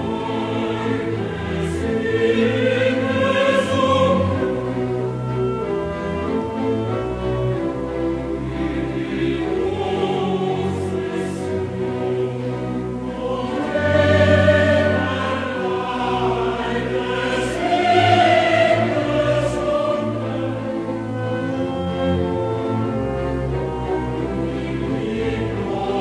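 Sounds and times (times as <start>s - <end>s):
choir singing: 0.0s - 26.0s
orchestra playing: 0.0s - 26.0s.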